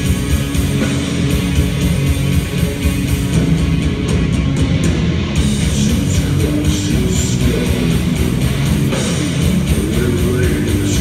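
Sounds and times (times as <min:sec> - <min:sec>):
heavy metal band playing: 0:00.0 - 0:11.0.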